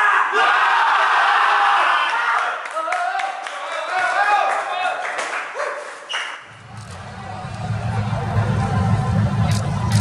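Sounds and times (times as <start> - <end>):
steady low rumble: 6.5 - 10.0.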